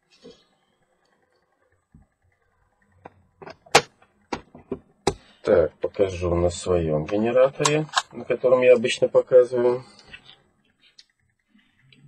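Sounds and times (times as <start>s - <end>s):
sharp clicks and knocks: 3.0s - 5.3s.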